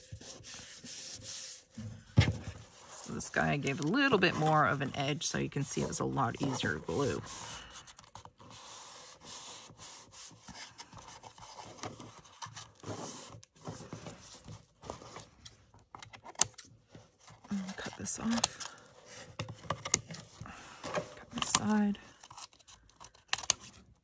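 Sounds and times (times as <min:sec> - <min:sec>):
paper rubbing and rustling: 0:00.0 - 0:15.4.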